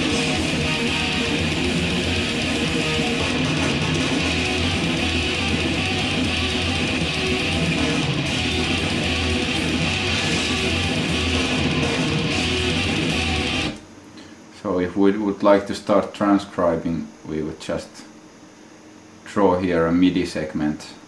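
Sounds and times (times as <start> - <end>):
heavy metal with distorted guitars: 0.0 - 13.8.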